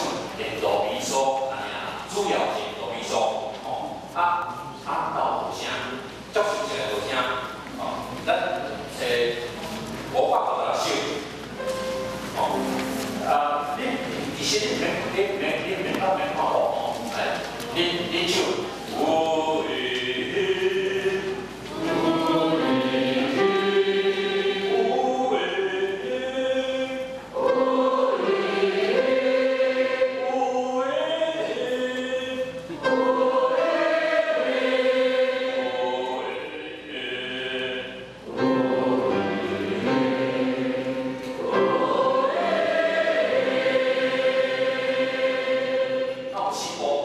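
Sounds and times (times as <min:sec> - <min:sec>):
choir singing a hymn: 0:17.8 - 0:47.0.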